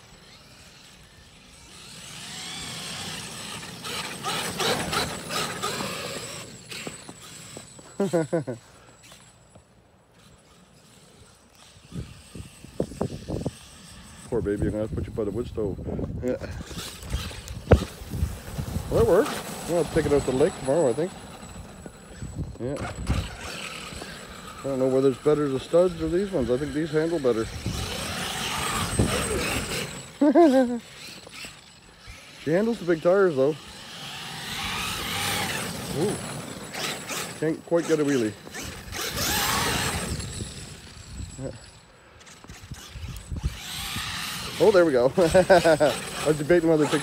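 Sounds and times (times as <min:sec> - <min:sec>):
electric motor whine: 0:00.0 - 0:08.4, 0:10.1 - 0:47.0
tires throwing snow: 0:00.0 - 0:09.7, 0:16.4 - 0:47.0.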